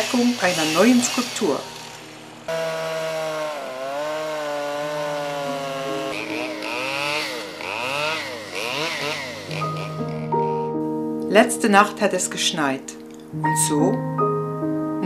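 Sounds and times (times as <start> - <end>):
chainsaw revving: 0.0 - 10.7.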